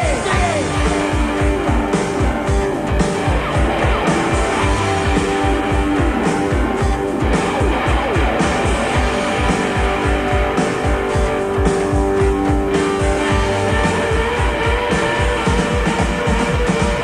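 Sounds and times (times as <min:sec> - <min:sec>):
bass: 0:00.0 - 0:17.0
distorted electric guitar slides: 0:00.0 - 0:17.0
steady drum beat: 0:00.0 - 0:17.0.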